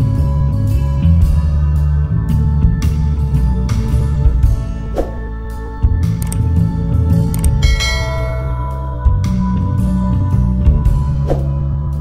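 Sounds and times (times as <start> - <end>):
background music: 0.0 - 12.0
notification bell chime: 7.6 - 9.0.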